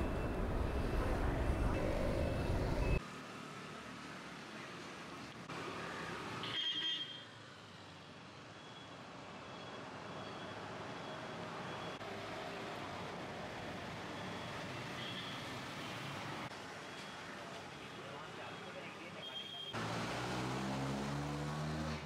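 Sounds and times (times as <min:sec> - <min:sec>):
road traffic rumble: 0:00.0 - 0:06.6, 0:07.2 - 0:22.0.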